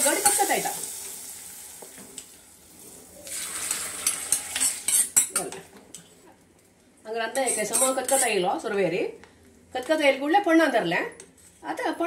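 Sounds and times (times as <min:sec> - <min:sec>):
hot oil sizzling in curry: 0:00.0 - 0:05.6.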